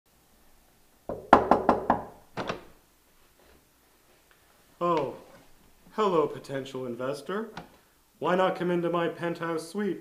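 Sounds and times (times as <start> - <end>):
knuckles knocking on a door: 1.1 - 2.2.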